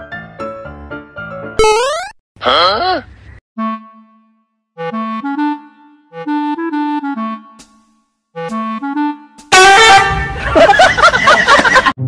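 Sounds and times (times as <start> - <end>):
clarinet tune: 3.6 - 7.6, 8.4 - 10.2.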